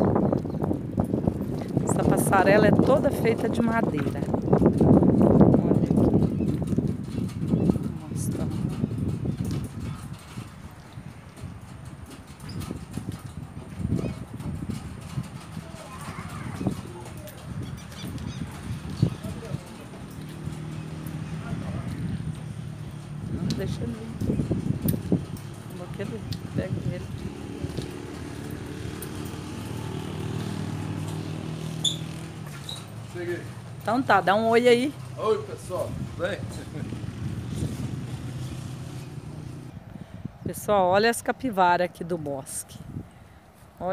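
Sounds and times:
footsteps on wooden planks: 0.0 - 33.8
vehicle engine humming: 0.0 - 40.0.

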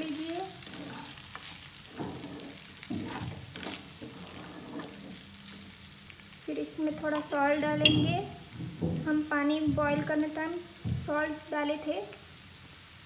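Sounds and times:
spatula scraping and knocking pan: 0.0 - 5.8, 7.0 - 9.0.

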